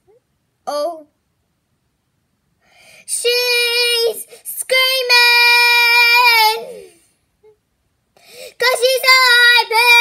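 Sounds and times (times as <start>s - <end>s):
girl singing unaccompanied: 3.0s - 7.0s, 8.4s - 10.0s.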